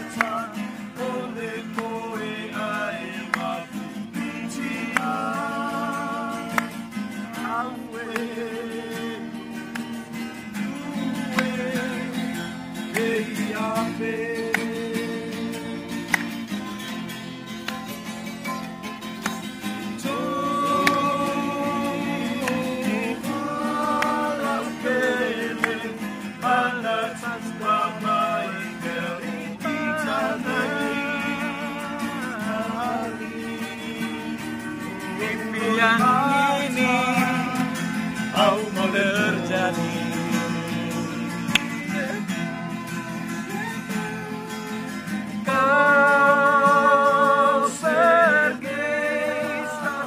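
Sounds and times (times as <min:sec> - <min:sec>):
men singing together: 0:00.0 - 0:16.5, 0:19.6 - 0:50.0
strummed acoustic guitars: 0:00.0 - 0:50.0.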